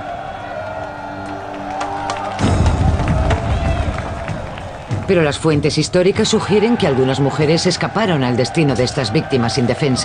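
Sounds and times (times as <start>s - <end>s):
music: 0.0s - 10.0s.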